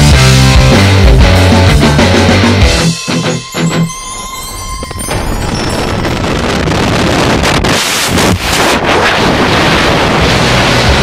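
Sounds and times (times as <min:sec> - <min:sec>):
rock music: 0:00.0 - 0:05.7
wind rushing across microphone: 0:04.5 - 0:11.0.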